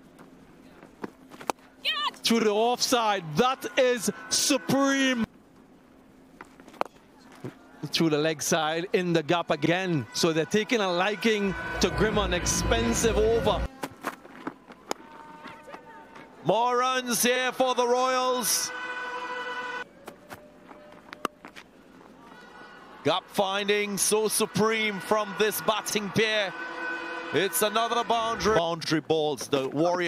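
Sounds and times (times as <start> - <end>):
faint ground ambience: 0.0 - 19.0, 19.8 - 30.0.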